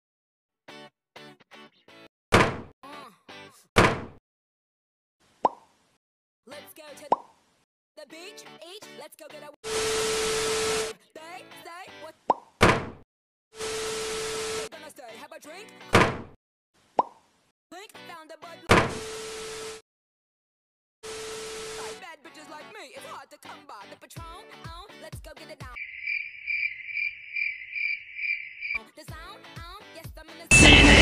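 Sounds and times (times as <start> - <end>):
cartoon whacks: 2.3 - 2.7, 3.8 - 4.2, 12.3 - 13.0
cartoon hit: 30.5 - 31.0
high-pitched chirpy voice: 30.5 - 31.0
short musical blips: 30.5 - 31.0.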